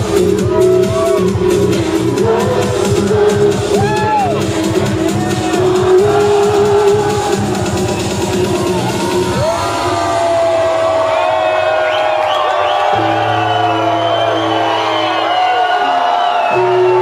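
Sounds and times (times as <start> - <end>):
pounding kick beat: 0.0 - 12.2
crowd whooping and cheering: 0.0 - 17.0
held synth chords: 0.0 - 17.0
trance music through sound system: 0.0 - 17.0.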